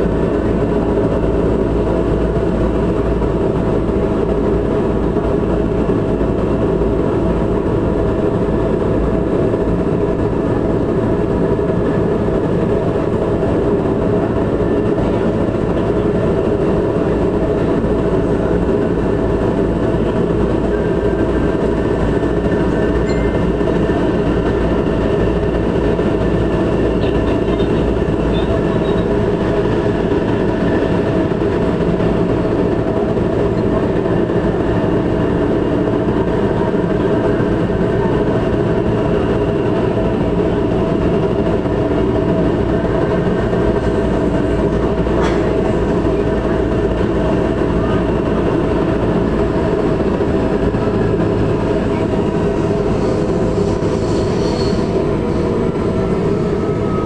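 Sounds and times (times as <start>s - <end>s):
constant hum: 0.0s - 57.0s
train rolling and motor noise: 0.0s - 57.0s.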